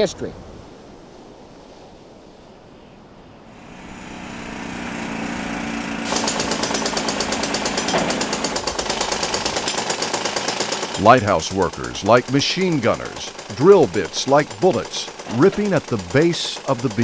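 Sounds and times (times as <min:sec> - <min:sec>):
pneumatic rock drill hammering: 0:03.6 - 0:17.0.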